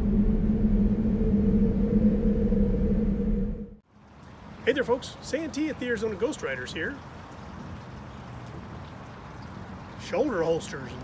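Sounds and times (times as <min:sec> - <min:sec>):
held two-note hum: 0:00.0 - 0:03.8
low rumbling drone: 0:00.0 - 0:03.8.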